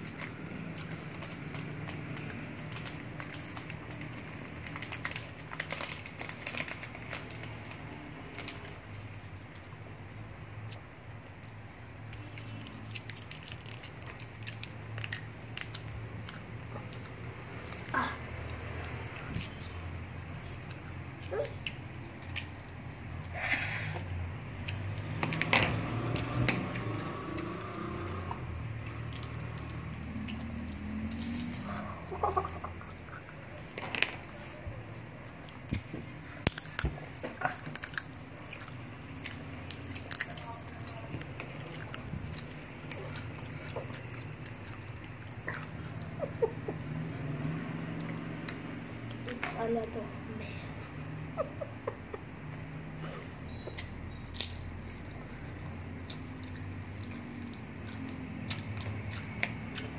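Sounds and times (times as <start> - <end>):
plastic wrappers crinkling: 0.0 - 10.8, 11.6 - 19.8, 28.6 - 47.1.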